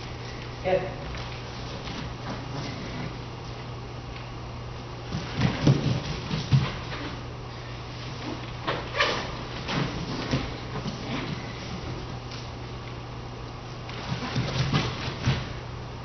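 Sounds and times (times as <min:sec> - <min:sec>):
steady low hum: 0:00.0 - 0:16.0
feet thudding on floor: 0:05.1 - 0:07.2.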